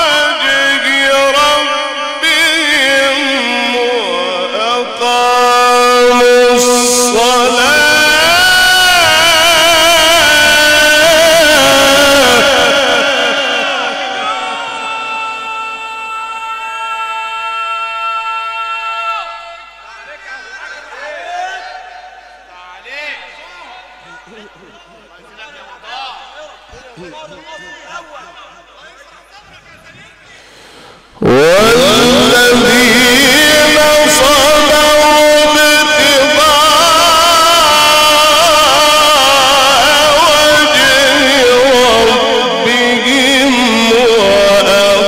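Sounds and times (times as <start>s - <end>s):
man chanting into a microphone: 0.0s - 30.6s, 31.2s - 45.0s.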